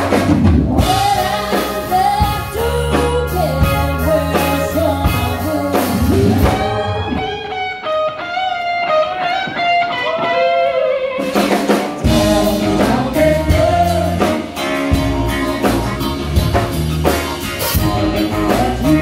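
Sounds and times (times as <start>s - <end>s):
blues-rock band playing: 0.0s - 19.0s
lead guitar bending phrases: 0.0s - 19.0s.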